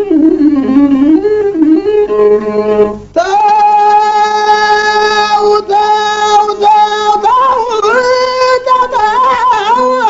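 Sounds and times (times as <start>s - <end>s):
high voice singing held notes: 0.0s - 10.0s.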